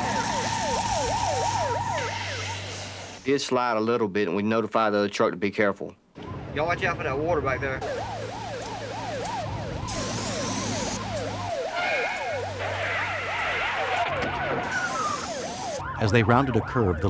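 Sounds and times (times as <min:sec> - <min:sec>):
ambulance siren yelping: 0:00.0 - 0:03.2, 0:07.7 - 0:17.0.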